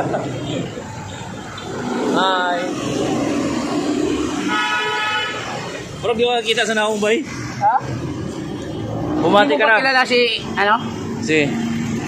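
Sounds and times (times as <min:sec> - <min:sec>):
street traffic noise: 0:00.0 - 0:12.0
vehicle horn blast: 0:04.4 - 0:05.6.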